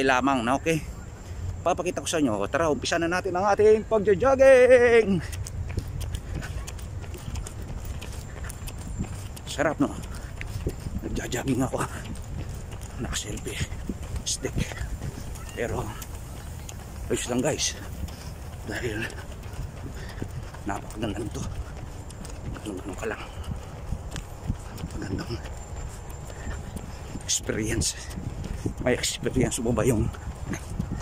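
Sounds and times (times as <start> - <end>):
jogging footsteps on pavement: 0.0 - 31.0
wind rumble on microphone: 4.5 - 31.0.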